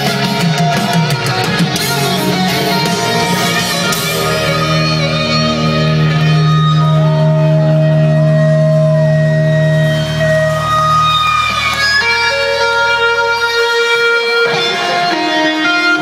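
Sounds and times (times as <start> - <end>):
electric guitar sustained notes: 0.0 - 16.0
deep bass note: 1.9 - 11.8.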